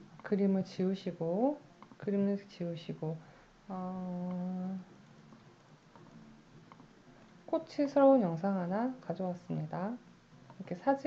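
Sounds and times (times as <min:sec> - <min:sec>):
woman humming hesitantly: 0:03.7 - 0:04.9.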